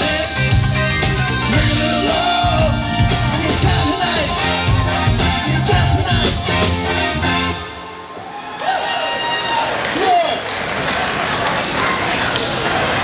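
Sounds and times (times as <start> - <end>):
live rock band playing: 0.0 - 8.1
audience applauding and cheering: 8.0 - 13.0
shouted whoops: 8.1 - 10.4.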